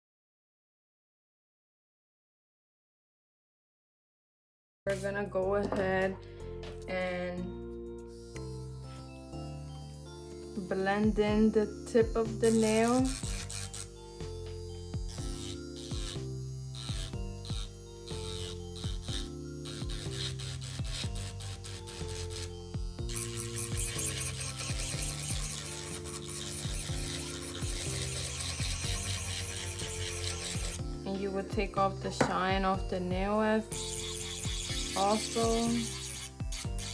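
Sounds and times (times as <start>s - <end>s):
background music with steady beat: 4.9s - 36.9s
electric nail drill sanding: 8.0s - 36.9s.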